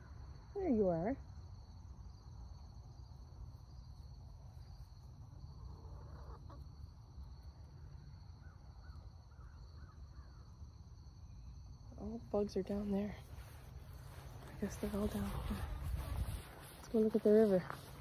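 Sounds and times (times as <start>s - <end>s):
insects chirping: 0.0s - 18.0s.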